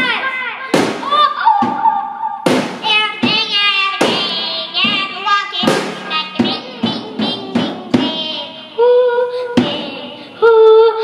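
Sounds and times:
child singing into a microphone: 0:00.0 - 0:11.0
sharp drum hits: 0:00.7 - 0:08.5.

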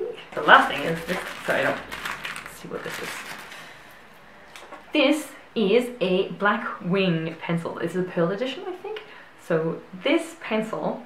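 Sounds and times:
paper wrapper rustling: 0:00.3 - 0:04.0.

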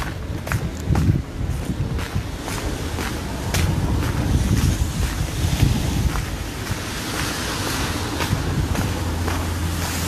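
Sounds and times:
street traffic: 0:00.0 - 0:10.0
wind buffeting microphone: 0:00.0 - 0:10.0.

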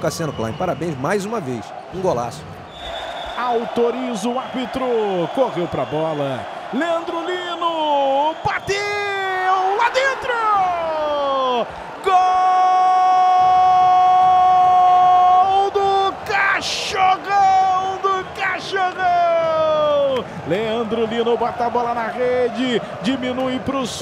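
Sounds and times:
long held goal cry: 0:06.4 - 0:20.3
commentator shouting excitedly: 0:06.8 - 0:20.2.

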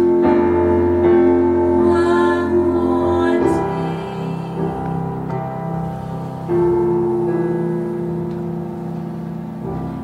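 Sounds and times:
sustained piano chords: 0:00.0 - 0:10.0.

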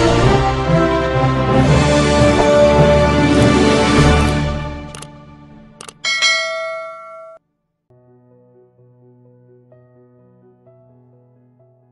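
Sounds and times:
bright bell ding: 0:06.0 - 0:07.4.

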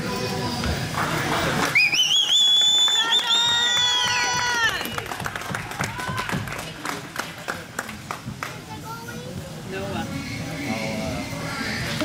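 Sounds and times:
shrill warbling whistle: 0:01.7 - 0:04.3.

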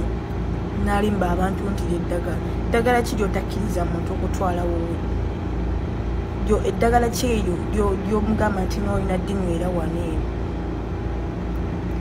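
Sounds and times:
faint constant hum: 0:00.0 - 0:12.0
low background rumble: 0:00.0 - 0:12.0.

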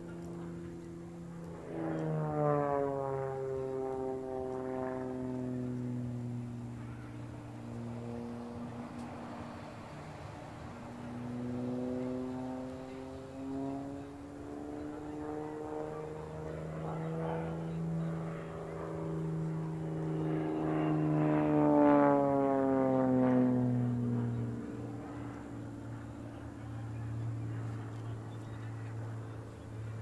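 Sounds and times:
propeller plane engine in flight: 0:00.0 - 0:30.0.

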